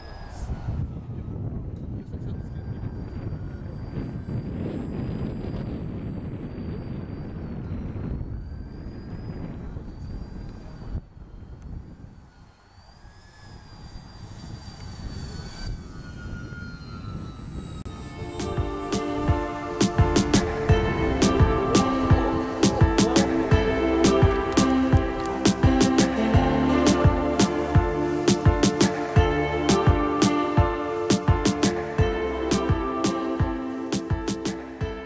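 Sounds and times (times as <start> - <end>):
model airplane motors whining: 0.0 - 32.6.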